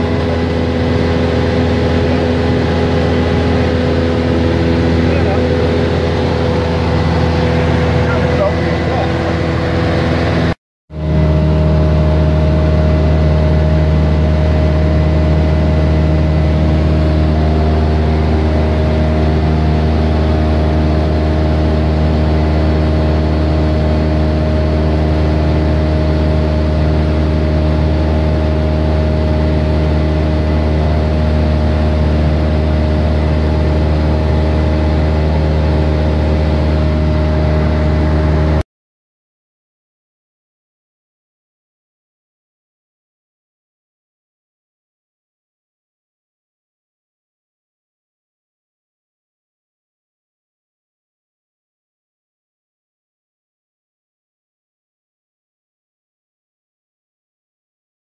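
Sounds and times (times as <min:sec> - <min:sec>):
light aircraft engine droning: 0:00.0 - 0:38.6.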